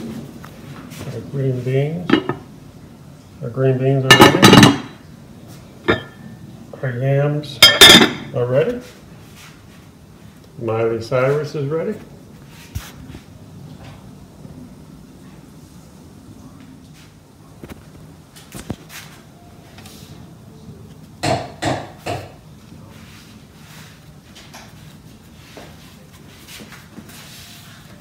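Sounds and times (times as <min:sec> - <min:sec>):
low steady hum: 0:00.0 - 0:26.4.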